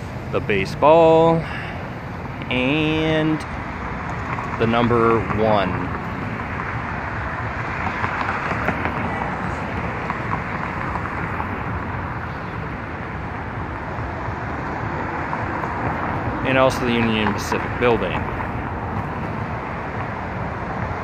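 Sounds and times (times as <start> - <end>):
traffic hum: 0.0 - 21.0.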